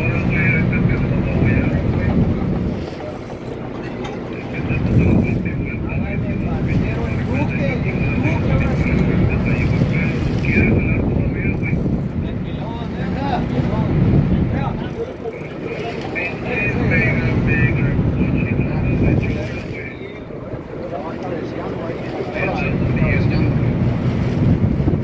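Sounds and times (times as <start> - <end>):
wind on microphone: 0.0 - 20.9, 22.4 - 25.0
boat engine running: 0.0 - 25.0
muffled voices: 0.0 - 25.0.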